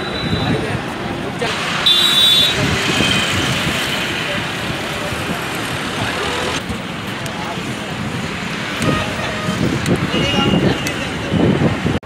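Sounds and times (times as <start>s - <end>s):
highway traffic rushing past: 0.0s - 12.0s
vehicle horn honking: 1.8s - 3.4s, 8.8s - 11.0s.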